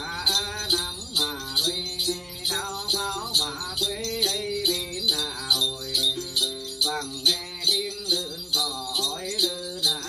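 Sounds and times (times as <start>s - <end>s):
jingle bells shaken in a beat: 0.0s - 10.0s
person singing: 0.0s - 10.0s
plucked lute melody: 0.0s - 10.0s.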